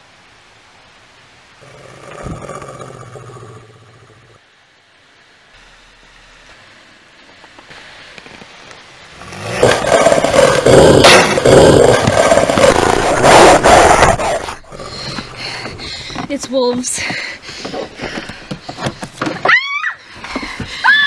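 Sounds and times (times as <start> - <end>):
wolves growling and snarling: 1.6 - 4.4, 9.2 - 16.2.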